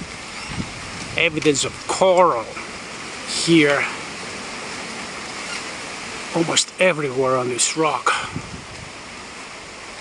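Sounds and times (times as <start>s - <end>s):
soft outdoor ambient hiss: 0.0s - 10.0s.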